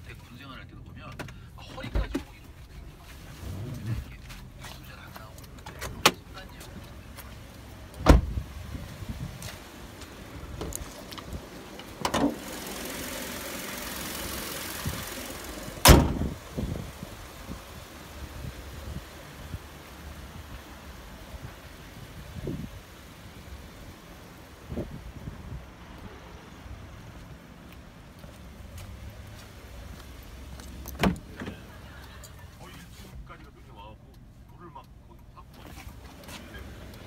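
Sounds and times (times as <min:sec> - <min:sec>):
steady hiss: 0:06.2 - 0:27.4
car door slam: 0:08.0 - 0:08.4, 0:12.0 - 0:12.4, 0:15.8 - 0:16.4, 0:30.9 - 0:31.6.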